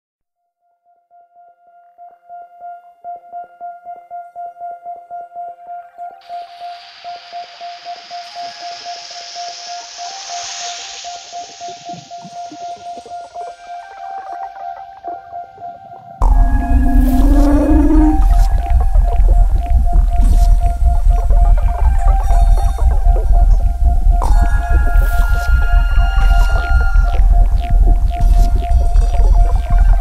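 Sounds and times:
pulsing synth tone: 6.0s - 30.0s
hissing noise swell: 6.2s - 15.0s, 16.2s - 30.0s
heavy bass and beat: 7.9s - 14.0s, 16.2s - 30.0s.

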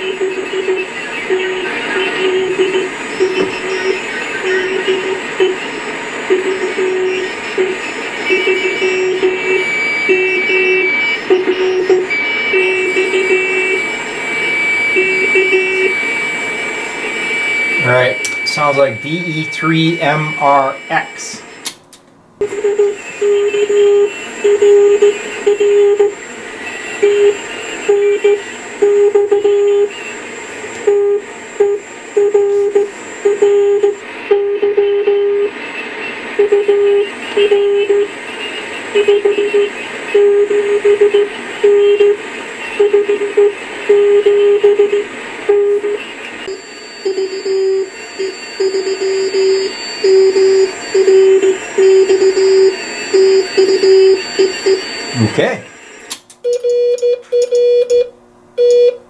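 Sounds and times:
morse code beeps: 0.0s - 21.6s, 22.4s - 30.1s, 30.8s - 35.6s, 36.4s - 59.0s
radio band hiss: 0.0s - 21.7s, 26.2s - 28.8s, 29.6s - 33.4s, 45.1s - 56.2s.

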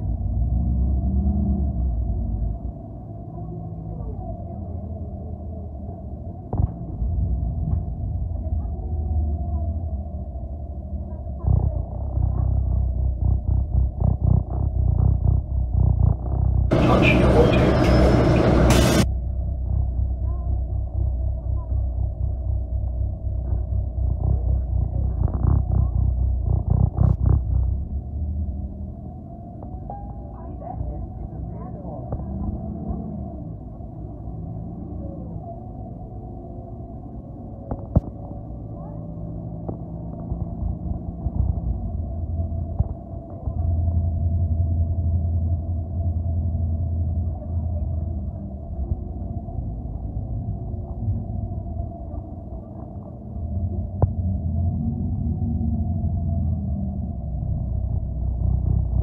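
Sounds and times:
bus engine rumble: 0.0s - 59.0s
steady whine: 0.0s - 59.0s.

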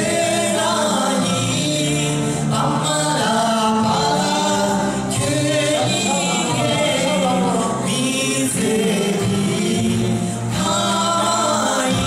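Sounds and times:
live band playing: 0.0s - 12.0s
person singing: 0.0s - 12.0s.

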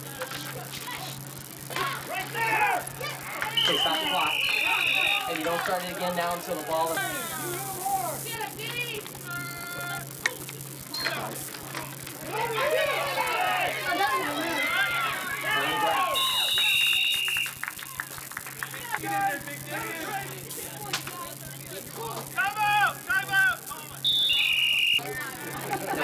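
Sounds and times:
crowd voices and shouts: 0.0s - 26.0s
referee's whistle blasts: 3.5s - 5.6s, 15.5s - 17.6s, 24.0s - 25.1s.

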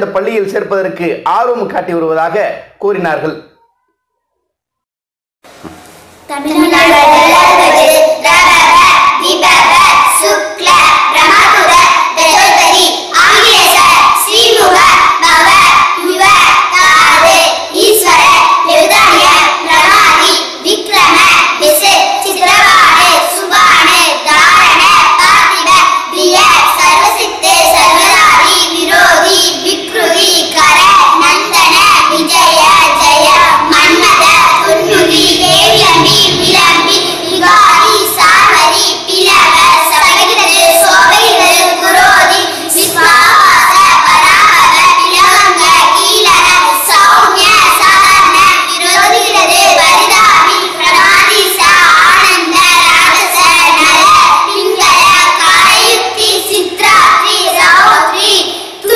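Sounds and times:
children singing in unison: 6.3s - 58.9s.

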